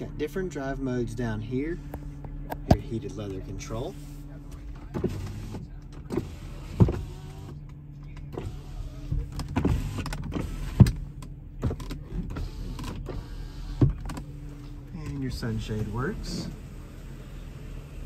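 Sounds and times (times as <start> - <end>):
electric window motor running: 4.9 - 14.8.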